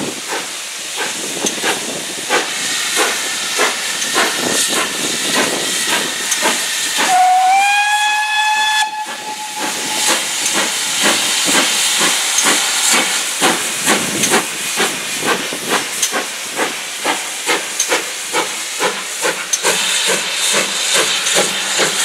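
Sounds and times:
steam locomotive exhaust chuffs: 0.0s - 22.0s
steam locomotive whistle: 6.8s - 10.9s.

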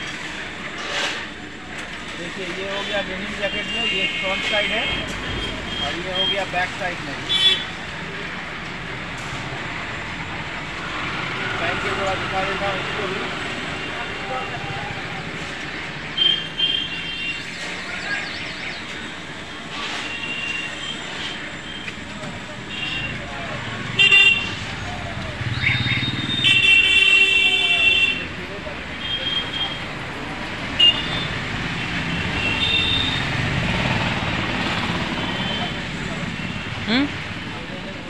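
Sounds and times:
road traffic: 0.0s - 38.0s
vehicle horns tooting: 2.7s - 6.6s, 7.2s - 7.8s, 16.2s - 17.7s, 19.7s - 22.0s, 22.6s - 23.3s, 23.9s - 24.7s, 25.6s - 30.0s, 30.7s - 33.4s, 35.1s - 36.9s.

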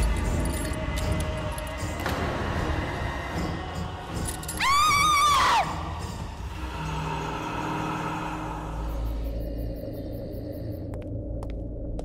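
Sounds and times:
low droning background score: 0.0s - 12.0s.

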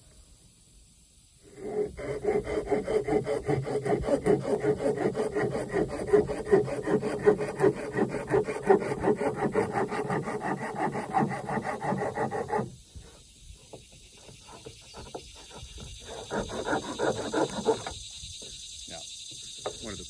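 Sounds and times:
hand saw cutting wood: 1.5s - 12.8s, 14.2s - 18.0s.

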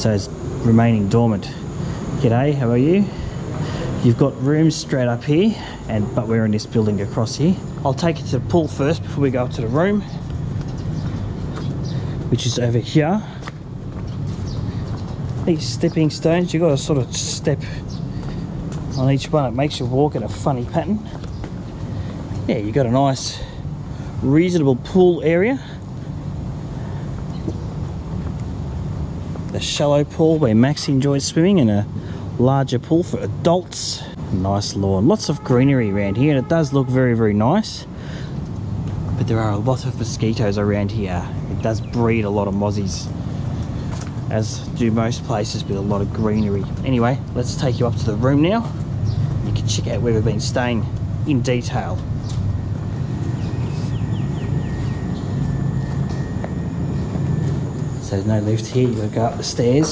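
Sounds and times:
low mechanical rumble: 38.0s - 59.9s.

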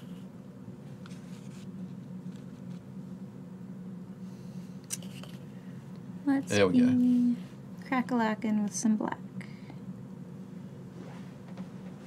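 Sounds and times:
low hum of room equipment: 0.0s - 12.0s.

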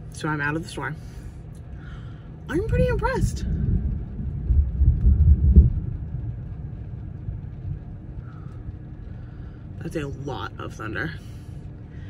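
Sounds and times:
thunder rolling: 2.5s - 9.1s.

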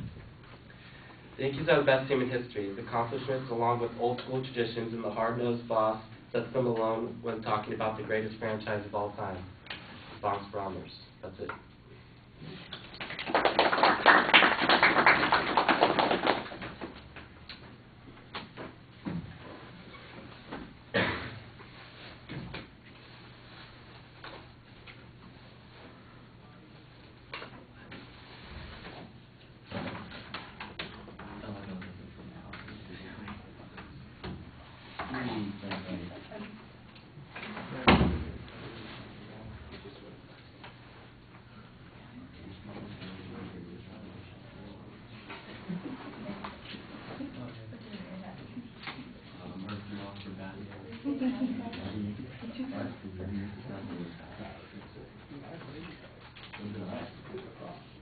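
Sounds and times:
audience clapping: 13.0s - 16.8s.

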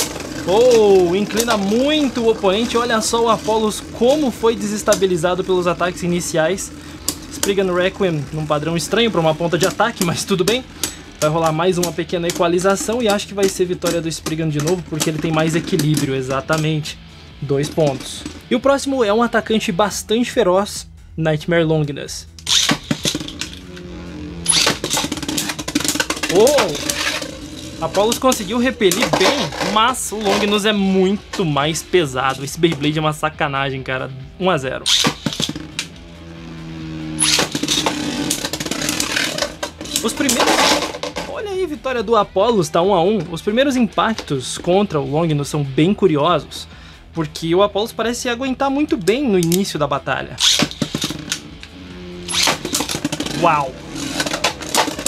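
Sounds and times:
spinning top landing with a clatter: 0.0s - 16.8s, 22.4s - 23.6s, 24.5s - 31.5s, 34.9s - 36.4s, 37.2s - 41.4s, 50.4s - 51.7s, 52.3s - 55.0s
spinning top whirring: 0.0s - 16.9s, 22.3s - 31.6s, 34.8s - 41.5s, 50.4s - 55.0s
launcher ripping: 22.4s - 30.8s, 34.9s - 41.4s, 50.4s - 55.0s
spinning tops clashing: 24.5s - 31.5s.

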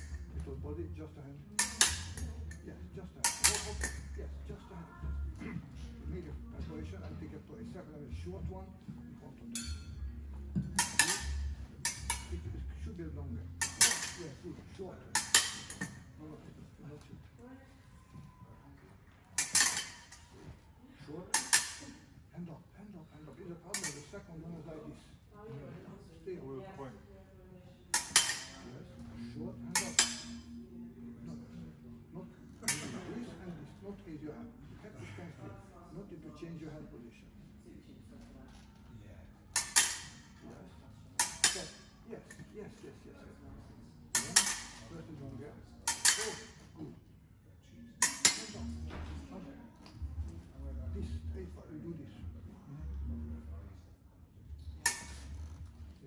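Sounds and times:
fencing blades clinking: 1.6s - 4.3s, 9.5s - 12.5s, 13.6s - 14.4s, 15.1s - 16.1s, 19.4s - 20.3s, 21.3s - 22.0s, 23.7s - 24.2s, 27.9s - 28.7s, 29.6s - 30.6s, 32.6s - 33.1s, 39.5s - 40.4s, 41.2s - 42.5s, 44.1s - 45.0s, 45.8s - 46.7s, 48.0s - 48.8s, 54.8s - 55.6s.

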